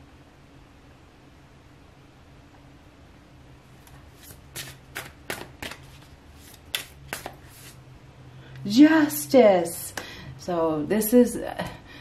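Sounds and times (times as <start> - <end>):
cards being shuffled: 3.8 - 7.8
crisp card snaps and flicks: 4.2 - 7.8.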